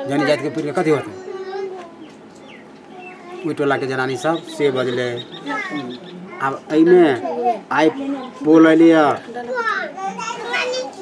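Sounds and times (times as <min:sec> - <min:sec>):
indistinct background talking: 0:00.0 - 0:11.0.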